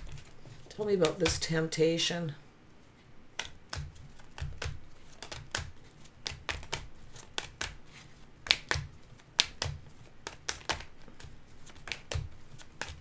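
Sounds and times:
cards being shuffled: 0.0 - 1.7, 3.3 - 13.0.

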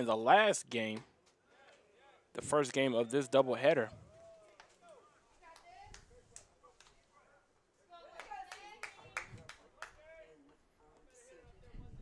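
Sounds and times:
sharp hand claps: 5.5 - 7.0, 8.2 - 10.0.

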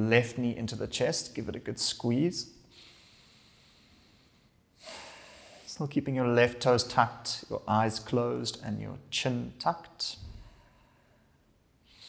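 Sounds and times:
faint human breathing: 2.6 - 5.8, 10.2 - 12.0.

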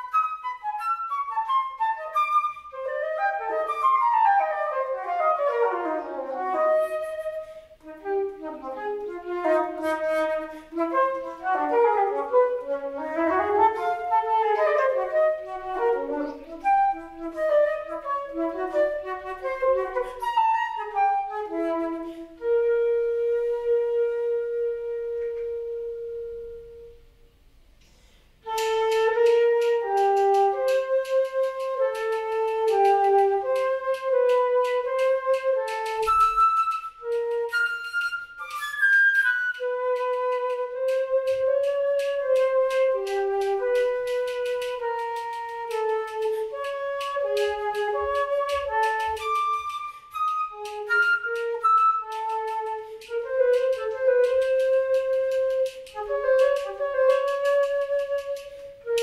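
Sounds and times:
solo flute playing: 0.0 - 27.4, 28.4 - 59.0
flute key clicks: 27.8 - 59.0.

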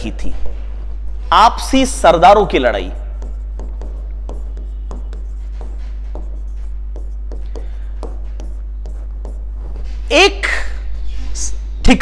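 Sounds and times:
low electrical hum: 0.0 - 12.0
pen writing on a board: 3.0 - 9.8.

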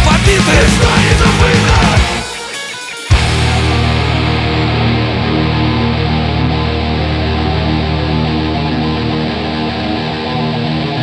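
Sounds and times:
heavy rock electric guitar chords: 0.0 - 11.0.

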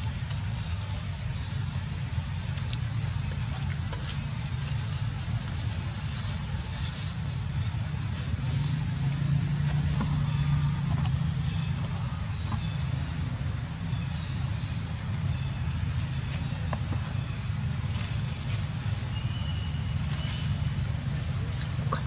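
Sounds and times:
low motor hum: 0.0 - 22.0.

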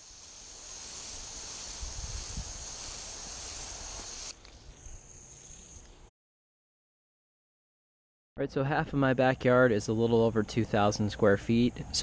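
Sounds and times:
hose sprayer hissing: 0.0 - 4.6.

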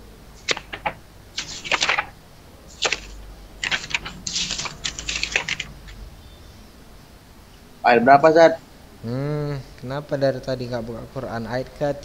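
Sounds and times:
computer keyboard typing: 0.4 - 2.1, 2.7 - 6.0.

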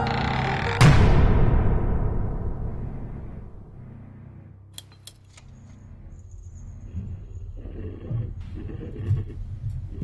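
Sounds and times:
steady low rumble: 0.8 - 4.7.

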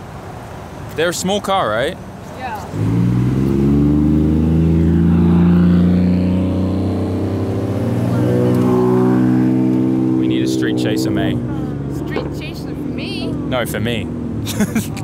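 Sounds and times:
car driving past: 2.6 - 14.4.

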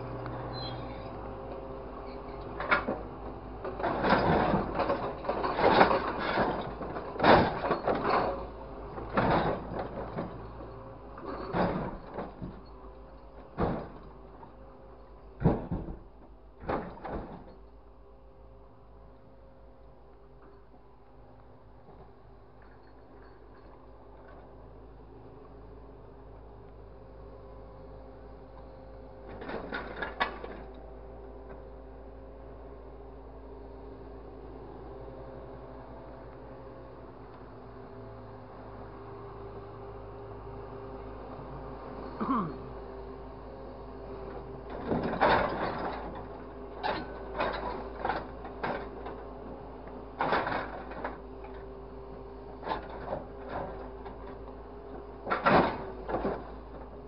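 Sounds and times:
machine engine hum: 0.0 - 57.0.

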